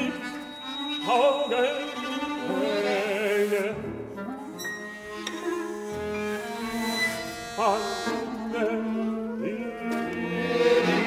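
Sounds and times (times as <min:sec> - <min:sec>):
note with wide vibrato: 0:00.0 - 0:03.7, 0:04.5 - 0:11.0
chamber ensemble held pitches: 0:00.0 - 0:11.0.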